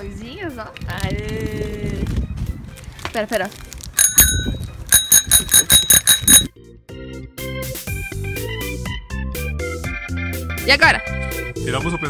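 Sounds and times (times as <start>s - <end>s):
bicycle bell ringing: 4.0s - 6.5s.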